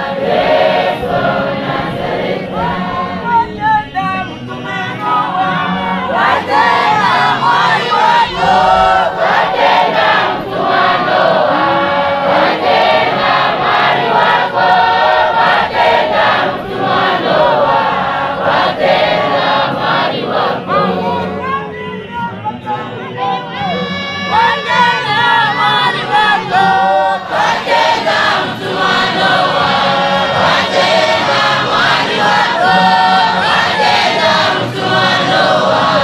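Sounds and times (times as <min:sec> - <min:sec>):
congregation singing a hymn: 0:00.0 - 0:36.0.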